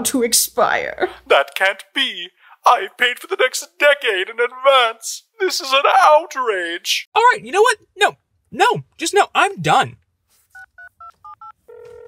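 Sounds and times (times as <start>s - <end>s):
phone ringing tone: 10.6s - 12.0s.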